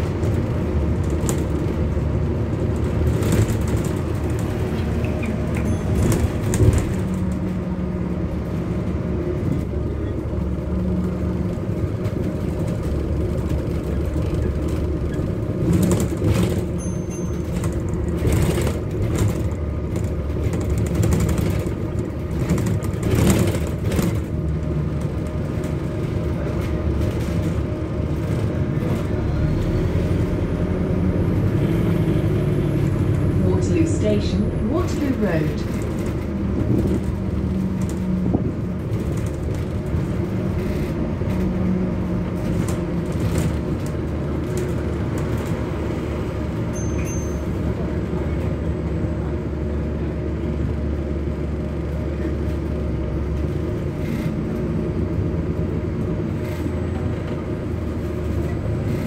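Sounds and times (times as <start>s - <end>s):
bus body knocks and rattles: 0.0s - 29.3s, 34.9s - 59.0s
bus engine and road drone: 0.0s - 59.0s.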